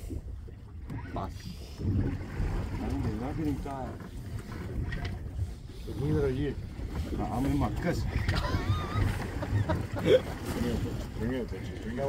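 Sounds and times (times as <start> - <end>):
wind and sea rumble: 0.0 - 12.0.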